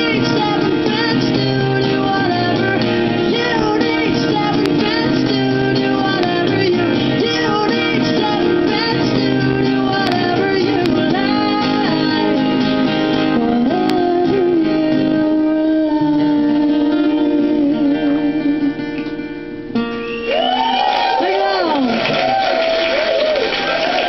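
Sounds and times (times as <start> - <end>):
crowd noise: 0.0 - 15.3, 19.0 - 24.0
woman singing: 0.0 - 18.9
acoustic guitars: 0.0 - 24.0.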